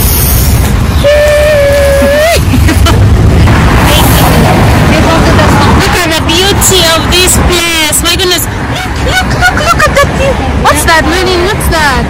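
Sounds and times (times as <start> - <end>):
wind buffeting microphone: 0.5 - 12.0
voice holding high note: 1.0 - 2.4.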